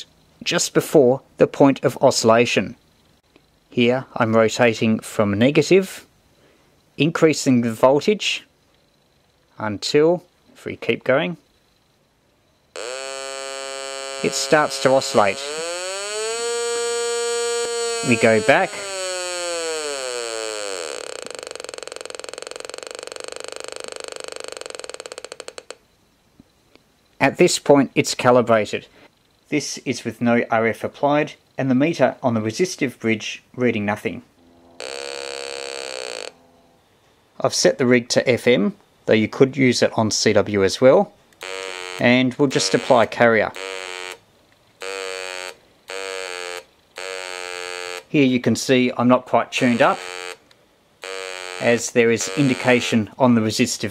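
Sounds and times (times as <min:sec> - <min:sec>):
oscillator buzzing tone: 0:12.7 - 0:25.8, 0:34.3 - 0:37.0, 0:41.4 - 0:44.2, 0:44.8 - 0:48.1, 0:49.6 - 0:53.0.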